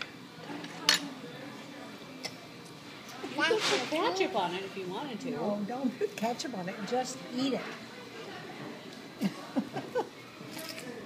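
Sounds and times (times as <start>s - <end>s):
faint murmur of voices: 0.0s - 11.0s
tableware clink: 10.4s - 11.0s.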